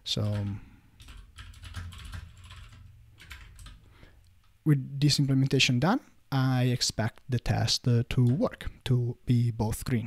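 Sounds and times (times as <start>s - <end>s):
computer keyboard typing: 0.1s - 3.9s.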